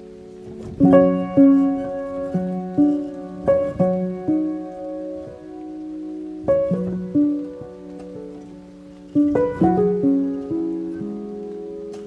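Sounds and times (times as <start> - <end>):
soft classical piano music: 0.0 - 12.0.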